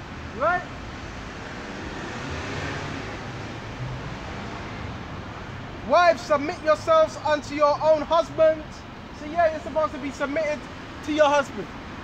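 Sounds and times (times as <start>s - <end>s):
road traffic hum: 0.0s - 12.0s.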